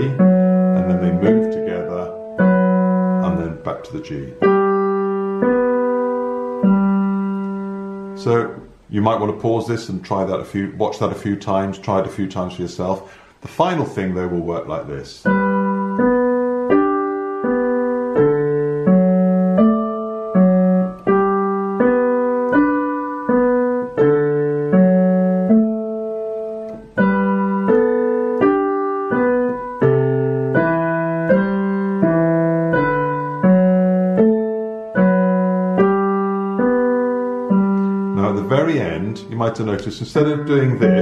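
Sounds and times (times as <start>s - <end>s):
digital piano piece: 0.0s - 13.0s, 13.6s - 41.0s.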